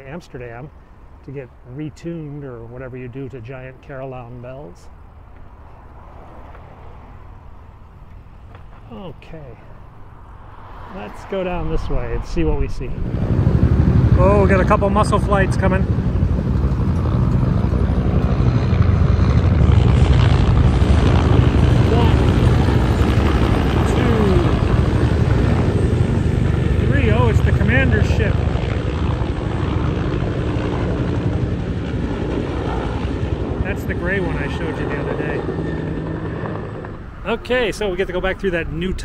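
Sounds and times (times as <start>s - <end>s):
helicopter rotors flying over: 0.0s - 39.0s.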